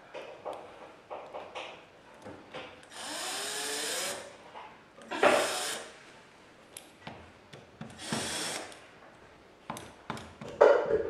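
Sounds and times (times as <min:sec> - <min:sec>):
cordless drill driving screws: 0:02.9 - 0:04.3, 0:05.1 - 0:05.9, 0:08.0 - 0:08.8.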